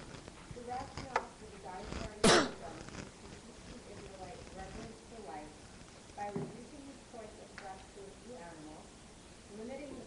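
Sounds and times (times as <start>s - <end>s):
person coughing: 2.2s - 2.6s.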